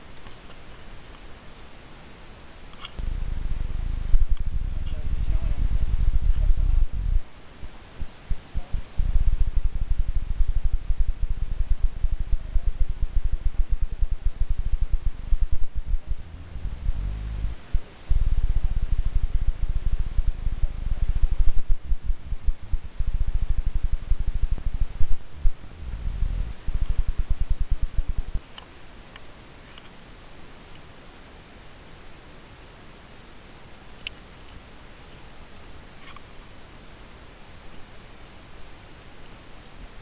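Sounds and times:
wind buffeting microphone: 3.0 - 7.3, 8.0 - 28.4.

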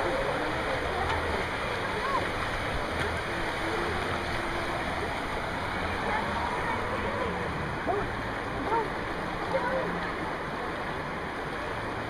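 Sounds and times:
river rapids rushing: 0.0 - 12.0.

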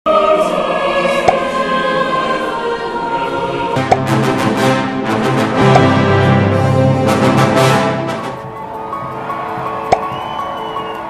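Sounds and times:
choir singing held notes: 0.1 - 11.0
music with lower notes: 3.8 - 11.0.

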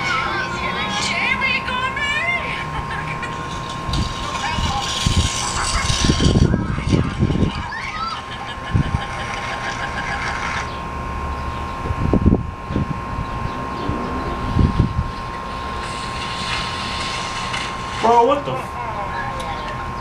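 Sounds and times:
steady high tone: 0.0 - 19.4.

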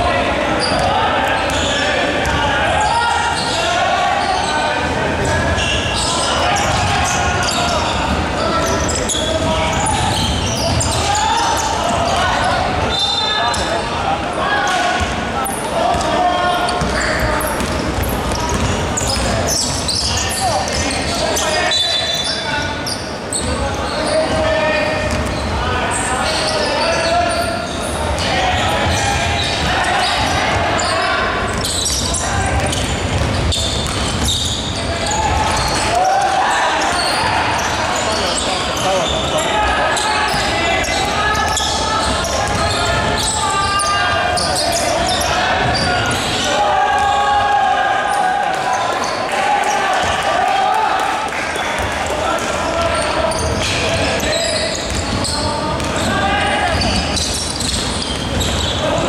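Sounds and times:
players shouting and chatting: 0.0 - 59.0
basketball bouncing on wood court: 16.8 - 20.8, 31.5 - 35.8, 40.8 - 43.4, 52.8 - 58.8.

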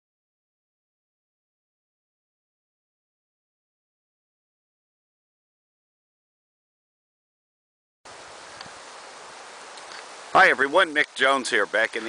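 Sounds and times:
light breeze in trees: 8.0 - 12.0.

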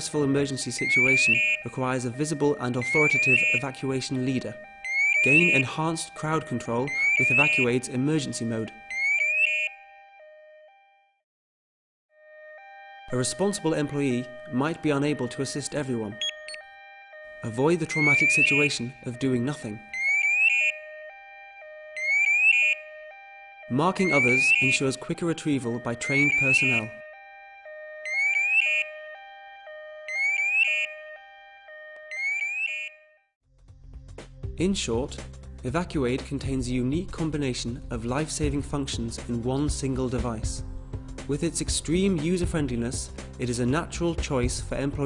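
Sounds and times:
shrill electronic alarm warble: 0.0 - 11.1, 12.2 - 33.3.

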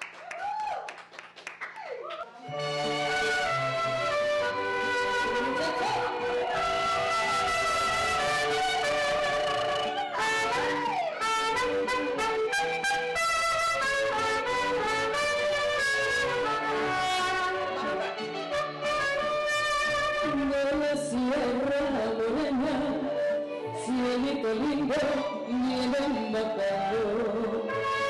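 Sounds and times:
trumpet playing melody: 2.4 - 20.6, 27.6 - 28.0
mariachi backing music from amplifier: 2.4 - 28.0
woman singing: 20.2 - 28.0.

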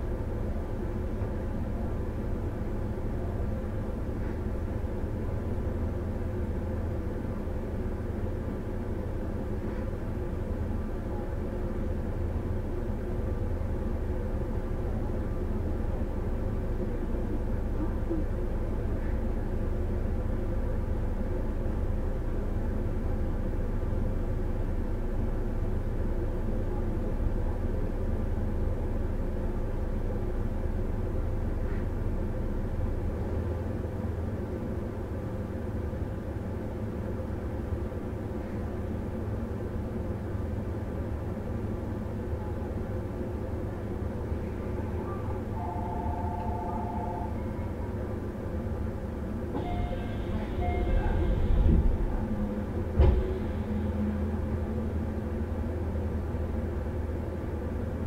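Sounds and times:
train wheels rumbling: 39.9 - 58.0
two-note tone: 45.6 - 47.4, 49.6 - 51.2.

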